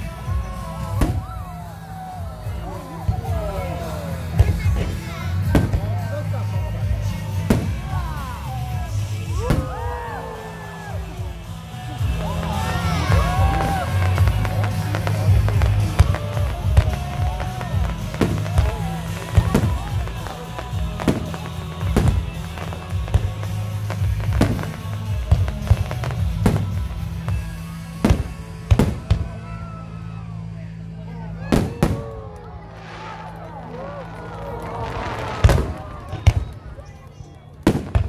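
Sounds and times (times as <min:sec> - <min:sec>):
fireworks bursting: 0:00.0 - 0:29.7, 0:31.5 - 0:38.0
music with heavy bass: 0:02.2 - 0:29.4.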